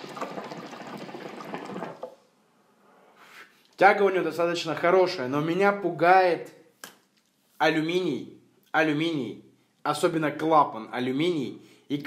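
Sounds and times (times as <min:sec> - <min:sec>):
water bubbling in hookah: 0:00.0 - 0:02.2.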